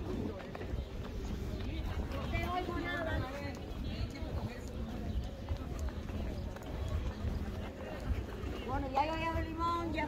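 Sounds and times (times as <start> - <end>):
footsteps on pavement: 0.0 - 10.0
wind rumble on microphone: 0.0 - 10.0.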